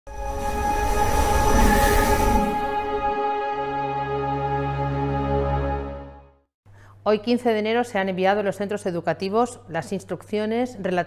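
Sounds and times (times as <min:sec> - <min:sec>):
whoosh: 0:00.1 - 0:03.4
held synth chord: 0:00.1 - 0:06.4.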